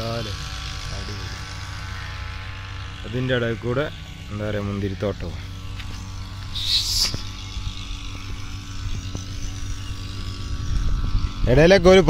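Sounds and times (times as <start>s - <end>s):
low motor hum: 0.0s - 12.0s
brief hiss: 6.6s - 7.3s.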